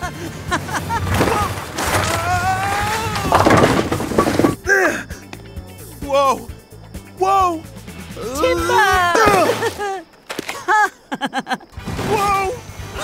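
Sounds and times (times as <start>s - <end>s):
music: 0.0s - 10.2s, 11.7s - 13.0s
clattering crash of impacts: 0.9s - 4.7s.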